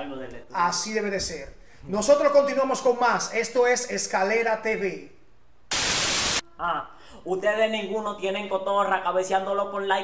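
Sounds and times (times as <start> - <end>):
burst of static white noise: 5.7 - 6.4.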